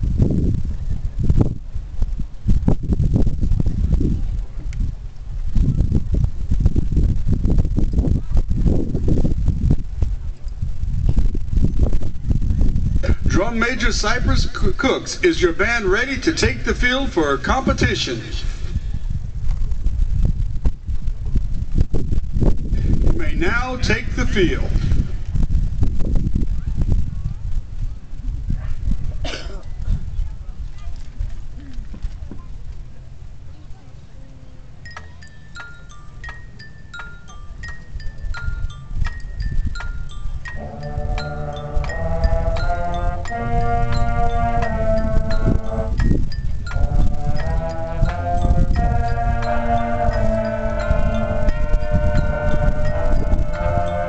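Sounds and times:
wind buffeting microphone: 0.0s - 54.0s
brass notes: 13.0s - 18.8s, 23.2s - 25.0s, 40.5s - 54.0s
mallet percussion: 34.9s - 54.0s.

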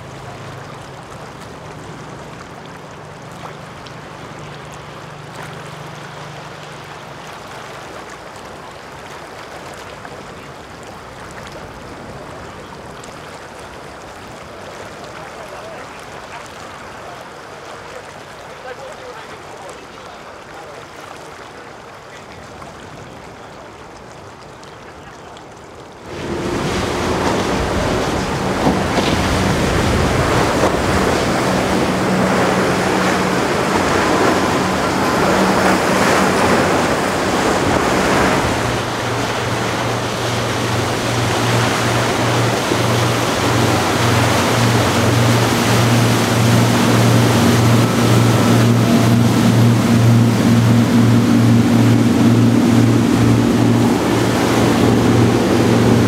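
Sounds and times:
waves rushing: 0.0s - 23.6s, 26.0s - 56.0s
boat engines droning: 0.0s - 25.1s, 26.0s - 56.0s.

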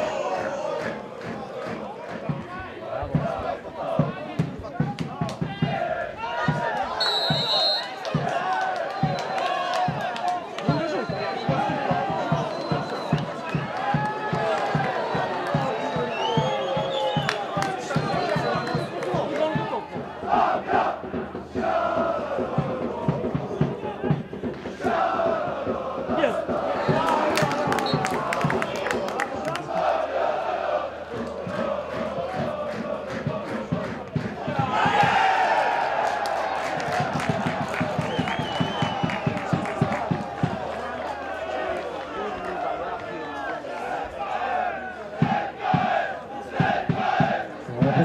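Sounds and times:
rhythmic drum beat: 0.0s - 41.9s, 45.0s - 48.0s
crowd chanting and singing: 0.0s - 48.0s
crowd cheering: 0.0s - 48.0s.

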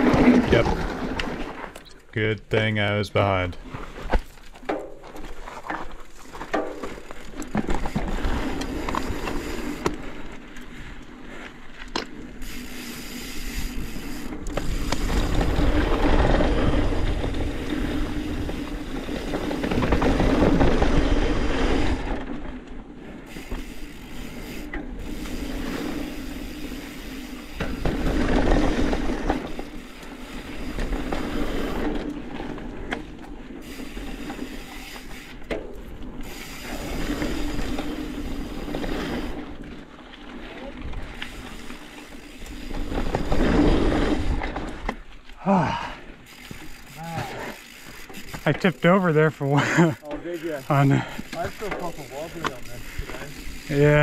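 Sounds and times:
bike tyres crunching on dirt: 0.0s - 2.0s, 2.7s - 54.0s
bike rattling: 0.0s - 54.0s.

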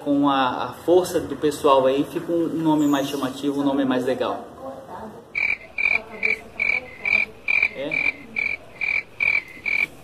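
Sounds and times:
frog calling: 5.4s - 10.0s.

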